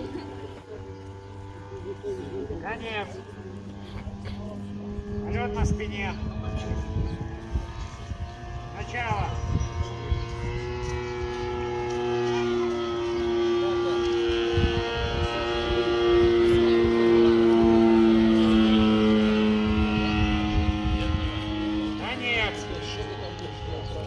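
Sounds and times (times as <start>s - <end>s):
model airplane engine flying overhead: 0.0s - 24.0s.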